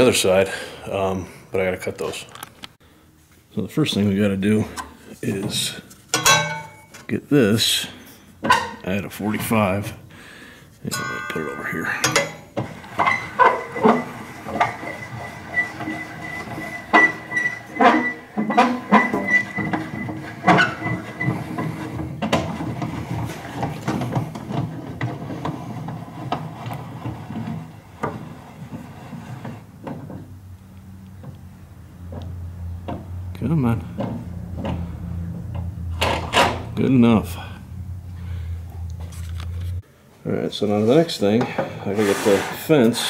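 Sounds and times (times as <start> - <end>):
metallic clicks and knocks: 6.1 - 7.1
gearing rattle: 11.0 - 30.3.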